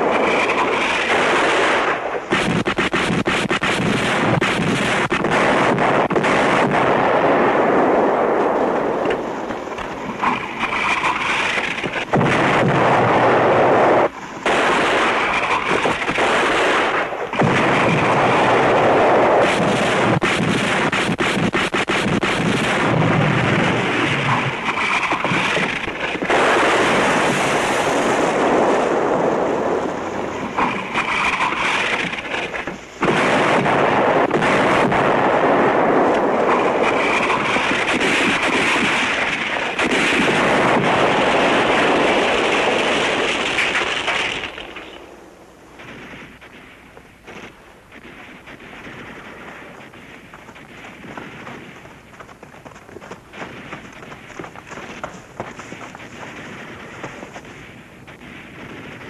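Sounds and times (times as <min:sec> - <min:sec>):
rapid gunfire: 0:00.0 - 0:07.9, 0:10.6 - 0:29.0, 0:30.6 - 0:44.7, 0:47.3 - 0:59.0
explosions: 0:00.0 - 0:45.2, 0:45.8 - 0:59.0.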